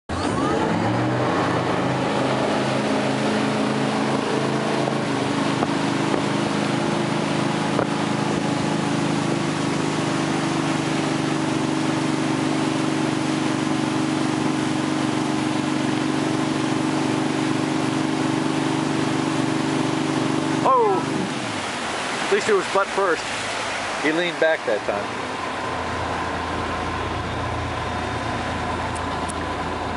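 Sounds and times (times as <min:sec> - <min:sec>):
boat engine: 0:00.1 - 0:29.9
rushing water and wind: 0:00.2 - 0:29.9.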